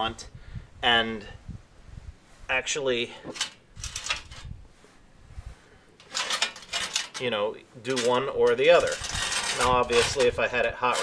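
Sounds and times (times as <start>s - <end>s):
metal scraping and rattling: 3.1s - 4.6s, 6.0s - 11.0s.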